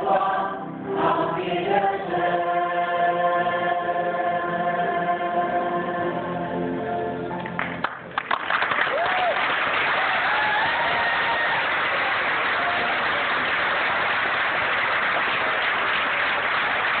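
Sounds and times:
audience applause: 7.6s - 17.0s
people whooping: 8.8s - 13.4s.

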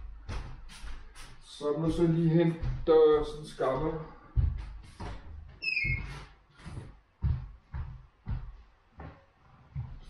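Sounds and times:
barefoot footsteps on wooden floor: 0.0s - 10.0s
short high squeak: 5.6s - 6.1s.

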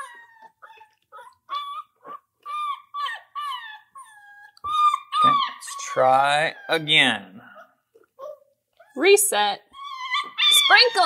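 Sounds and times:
puppy whimpering: 0.0s - 11.0s.

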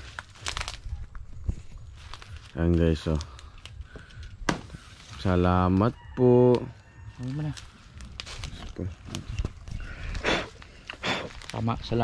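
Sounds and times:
leaves and undergrowth rustling: 0.0s - 12.0s.

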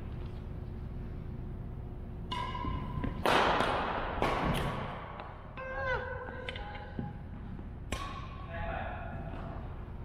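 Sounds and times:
racket striking shuttlecock: 2.3s - 5.3s, 7.9s - 8.4s.

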